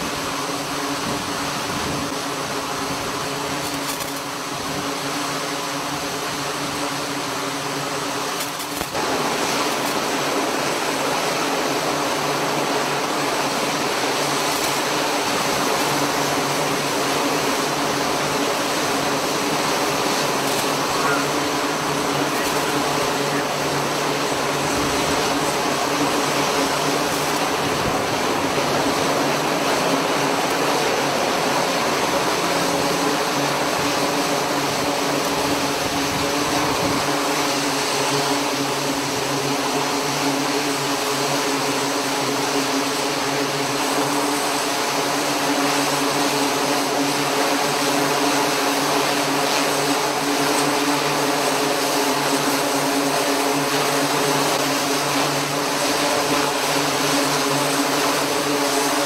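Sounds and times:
helicopter turbine and rotor: 0.0 - 59.0.

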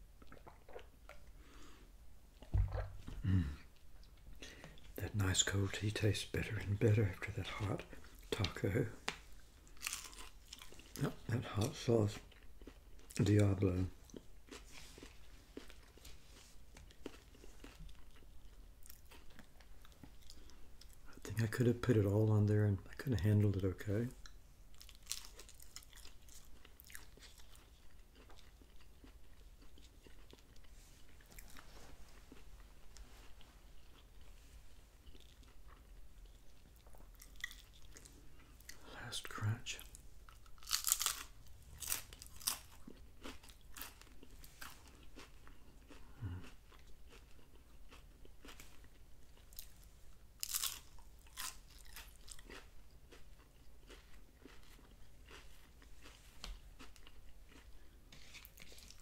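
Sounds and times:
crunching hard taco shell: 40.5 - 44.2.

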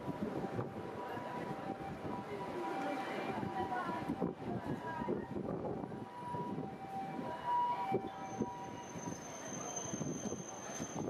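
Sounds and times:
tram wheels squealing: 8.0 - 11.0.

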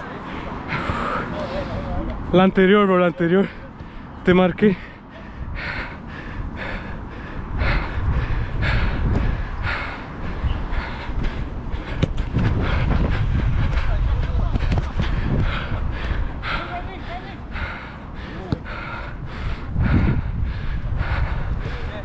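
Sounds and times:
heavy breathing: 0.0 - 2.2, 3.4 - 22.0
wind rumble on microphone: 5.3 - 16.6, 18.7 - 22.0.

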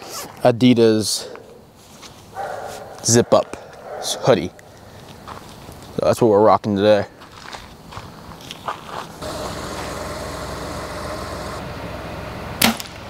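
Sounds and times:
steady outdoor hiss: 0.0 - 13.0
footsteps on gravel: 4.7 - 6.0, 7.0 - 10.0
arrow hitting target: 12.6 - 13.0.

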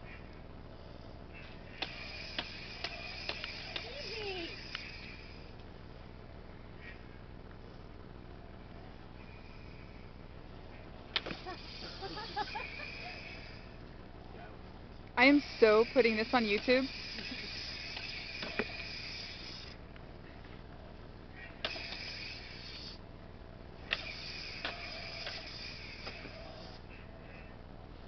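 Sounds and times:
toy light sabres clacking: 1.4 - 5.5, 15.2 - 19.8, 21.5 - 23.0, 23.8 - 26.8.

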